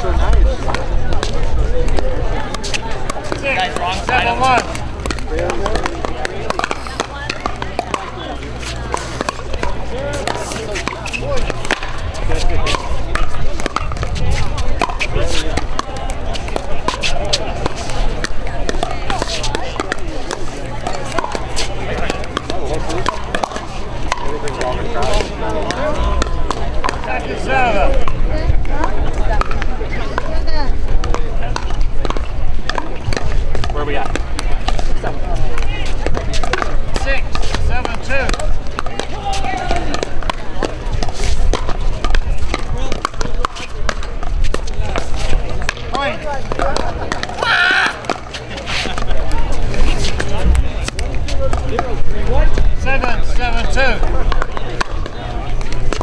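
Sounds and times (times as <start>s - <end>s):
paddles striking pickleball: 0.4s - 30.4s, 31.0s - 56.0s.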